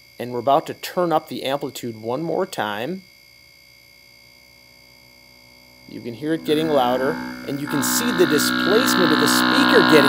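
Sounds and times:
low sine wave tone: 3.0s - 10.0s
high-pitched whine: 4.0s - 10.0s.

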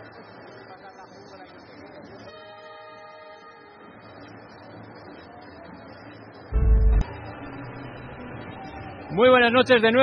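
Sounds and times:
steady horn tone: 6.6s - 7.7s.

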